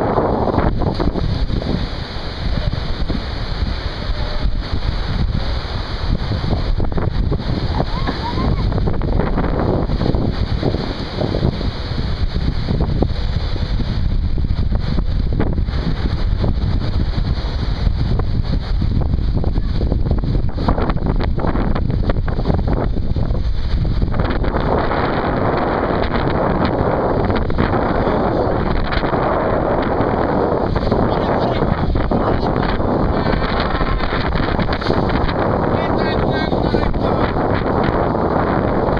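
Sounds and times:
ocean surf: 0.0 - 38.9
wind buffeting microphone: 0.0 - 38.9.

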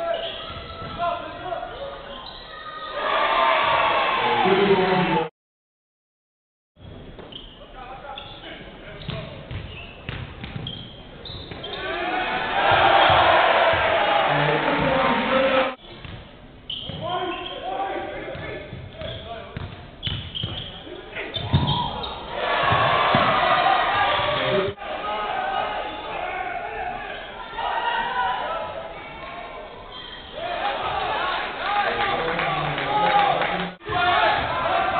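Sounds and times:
crowd cheering and shouting: 2.4 - 5.3, 11.8 - 15.8, 21.6 - 29.0, 30.4 - 34.9.

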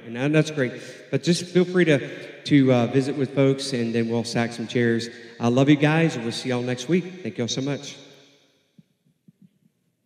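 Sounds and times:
echo of spoken words: 0.0 - 8.0.

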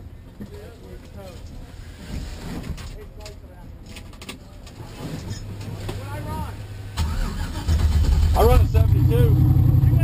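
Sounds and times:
voices: 2.8 - 6.9
car engine rumbling: 5.0 - 10.0.

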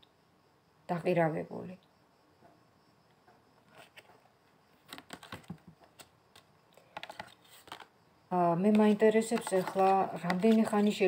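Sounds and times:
cards clicking and tapping: 4.9 - 7.9, 8.7 - 11.0.

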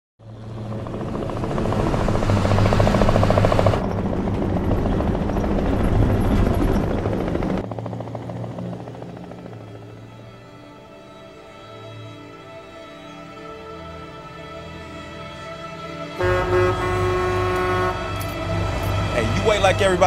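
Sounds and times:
helicopter rotor chopping: 0.2 - 10.4
helicopter engine hum: 0.2 - 20.0.

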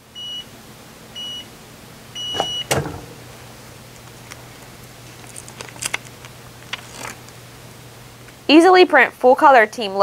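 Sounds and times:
heat press platen clack: 2.3 - 3.4.

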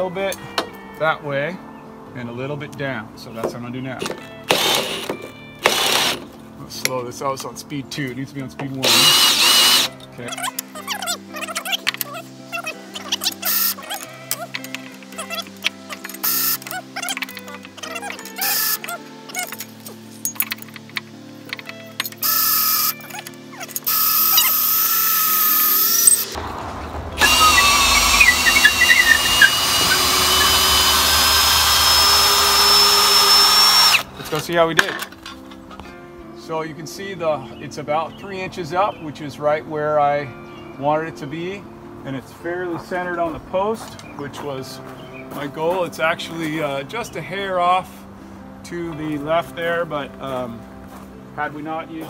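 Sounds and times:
background music: 0.0 - 52.0
cordless drill boring through wood: 4.5 - 6.2, 8.8 - 9.9, 13.1 - 14.0, 16.2 - 19.0, 22.2 - 23.0, 23.8 - 26.4, 27.2 - 34.1.

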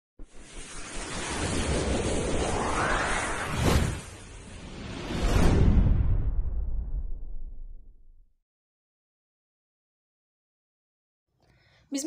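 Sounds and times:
rumbling hissing noise swell: 0.3 - 5.0.

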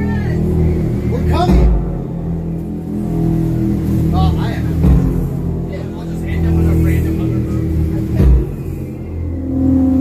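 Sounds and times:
loud low drone: 0.0 - 10.0.

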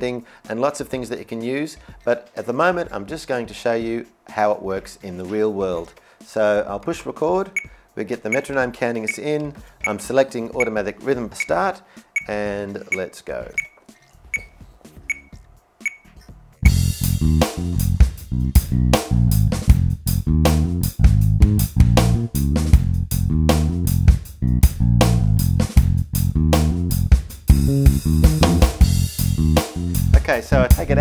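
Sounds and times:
drum rhythm pattern: 6.6 - 24.4, 26.6 - 31.0
metronome clicks: 8.3 - 10.0, 12.2 - 16.3
bass line: 16.6 - 31.0.

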